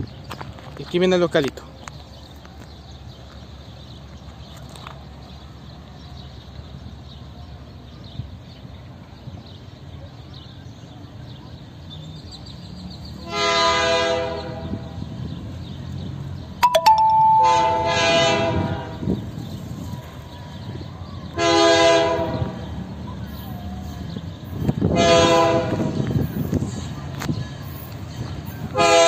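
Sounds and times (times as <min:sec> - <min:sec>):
low rumble of train: 0:00.0 - 0:29.0
locomotive air horn blasts: 0:13.3 - 0:14.8, 0:17.0 - 0:19.1, 0:21.4 - 0:22.6, 0:24.9 - 0:26.0, 0:28.8 - 0:29.0.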